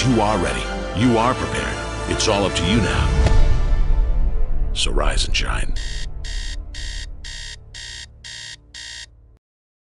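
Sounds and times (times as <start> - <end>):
low music bed: 0.0 - 8.9
alarm clock beeping: 5.8 - 9.2.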